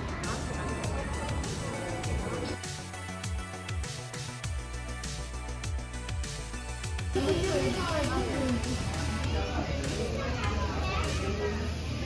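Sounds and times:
people and children chattering: 0.0 - 3.1, 7.1 - 12.0
faint music: 0.0 - 12.0.

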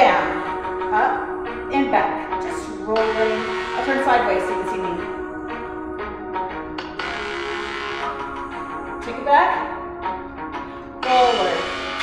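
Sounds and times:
held chord music: 0.0 - 12.0.

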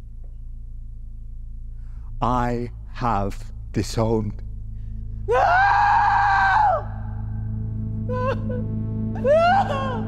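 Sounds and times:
low music drone: 0.0 - 10.0
woman screaming: 5.3 - 7.0, 9.2 - 10.0.

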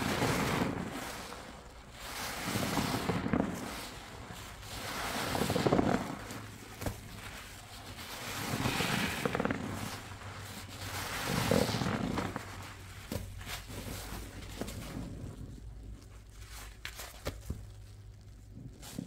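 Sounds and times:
foam crackling: 0.0 - 19.0
wet sponge squelching: 0.0 - 19.0.

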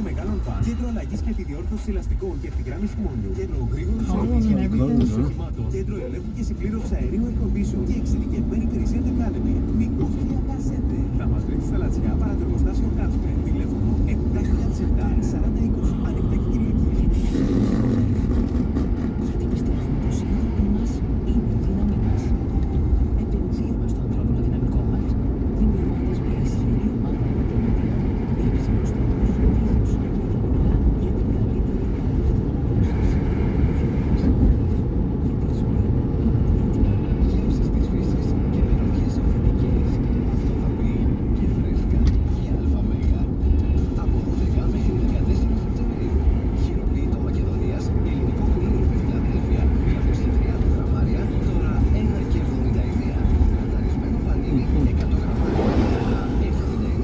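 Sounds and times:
car radio talk and music: 0.0 - 57.0
car road and engine rumble: 0.0 - 57.0.

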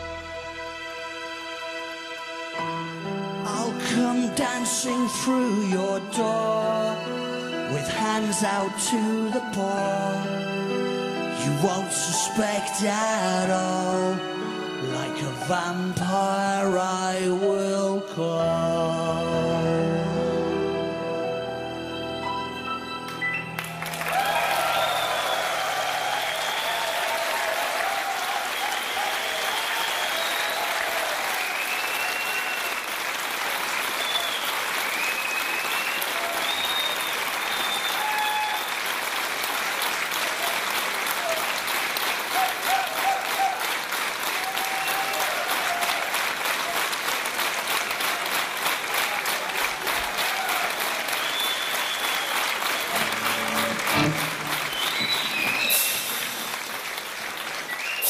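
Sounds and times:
audience applauding: 23.1 - 58.0
crowd cheering: 23.3 - 58.0
whistles: 24.7 - 27.0, 28.5 - 32.9, 33.9 - 38.8, 51.1 - 53.8, 54.5 - 56.5, 57.6 - 58.0.

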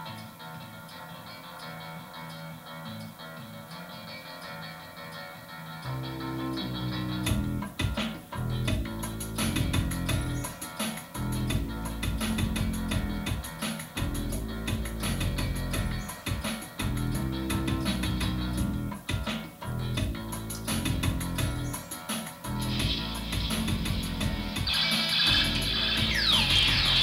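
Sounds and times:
layered guitar loops: 0.0 - 27.0
low bass line: 5.9 - 7.8, 8.4 - 10.5, 11.2 - 13.4, 14.0 - 16.1, 16.8 - 21.8, 22.5 - 24.7, 25.3 - 27.0
drum machine beat with hi-hat: 5.9 - 27.0.

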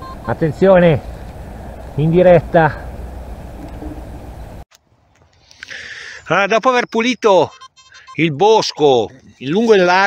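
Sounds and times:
steady rumbling: 0.0 - 4.6.

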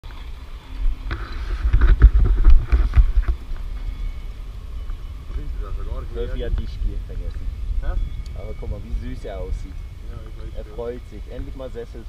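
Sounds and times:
steady rumble: 0.0 - 12.0
knocks and rubbing on microphone: 1.0 - 3.9.

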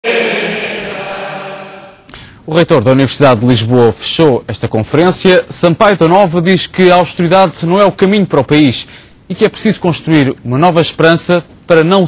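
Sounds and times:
choir singing a long chord: 0.0 - 2.1.

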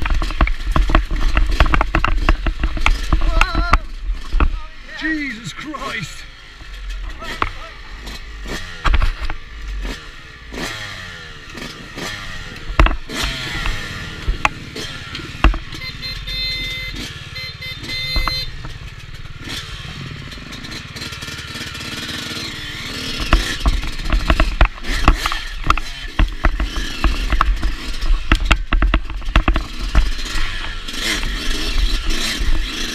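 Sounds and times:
bike knocks and rattles: 0.0 - 4.7, 6.6 - 10.0, 11.6 - 15.9, 17.9 - 32.9
dirt bike engine revving: 0.0 - 32.9.

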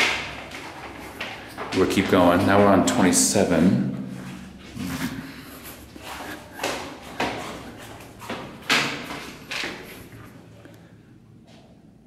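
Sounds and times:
footsteps: 0.0 - 10.8.

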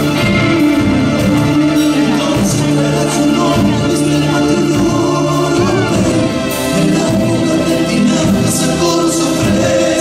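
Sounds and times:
folk vocal group singing in harmony: 1.4 - 10.0.

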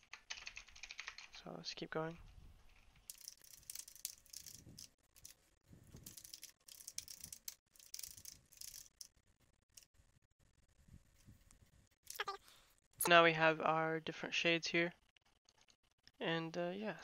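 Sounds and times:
computer keyboard typing: 0.0 - 1.4, 2.7 - 5.4, 6.0 - 9.1.

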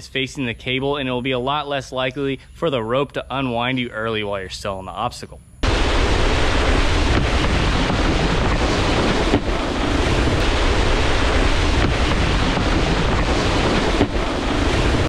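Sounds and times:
water spraying off wakeboard: 5.6 - 15.0
wind buffeting microphone: 5.6 - 15.0.

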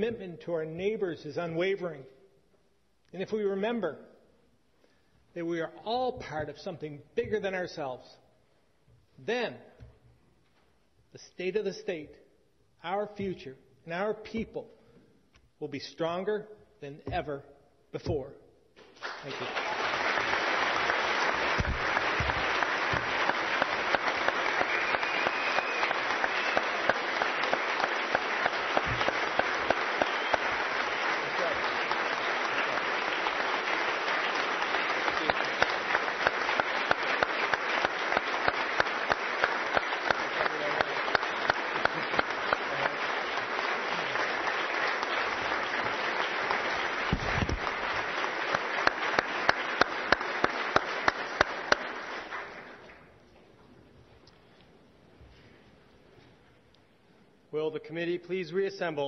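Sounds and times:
audience applause: 18.8 - 53.1
close person clapping: 18.8 - 53.1.

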